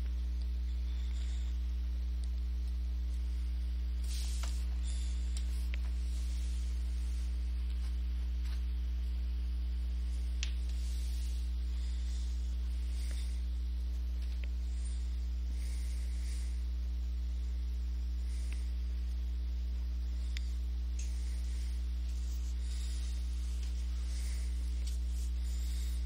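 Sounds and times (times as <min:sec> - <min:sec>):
electrical mains hum: 0:00.0 - 0:26.0.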